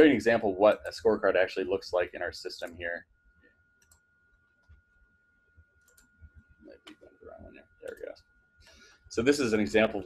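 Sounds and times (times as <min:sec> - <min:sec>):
computer mouse clicks: 0:03.8 - 0:04.0, 0:05.8 - 0:07.1, 0:07.8 - 0:08.2.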